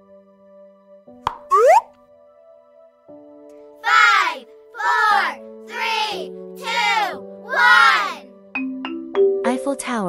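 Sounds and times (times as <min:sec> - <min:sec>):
soft background music chords: 0:00.0 - 0:10.0
cartoon pop click: 0:01.2 - 0:01.9
upward-sweeping bloop: 0:01.5 - 0:01.8.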